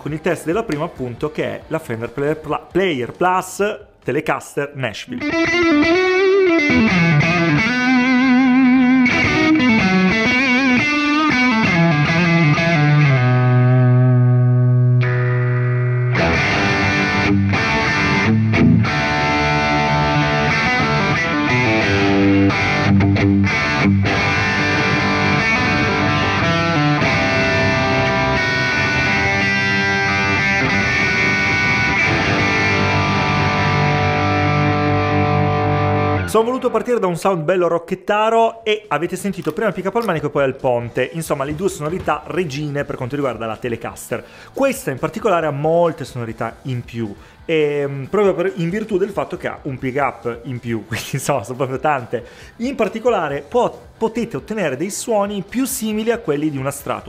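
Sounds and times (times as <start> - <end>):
distorted electric guitar: 5.2 - 37.0.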